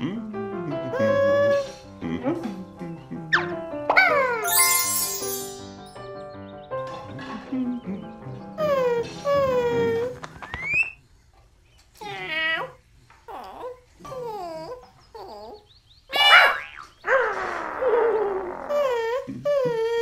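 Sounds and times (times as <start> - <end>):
cartoon dog whining: 13.3 - 20.0
cartoon bird squawk: 16.1 - 17.6.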